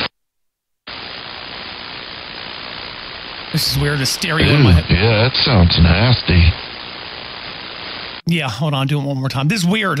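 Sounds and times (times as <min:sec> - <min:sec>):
radio static: 0:00.9 - 0:08.3.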